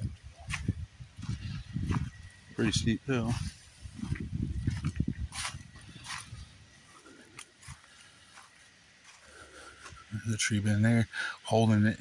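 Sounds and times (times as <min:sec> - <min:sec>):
wind buffeting microphone: 0:00.0 - 0:07.8
footsteps crunching in dry leaves: 0:00.0 - 0:10.2.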